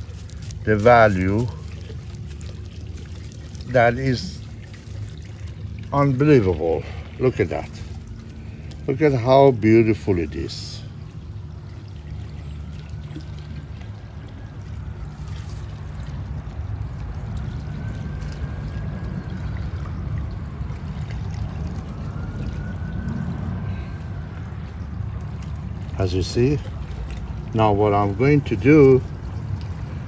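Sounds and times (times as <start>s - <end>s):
low rumble with watery hiss: 0.0s - 30.0s.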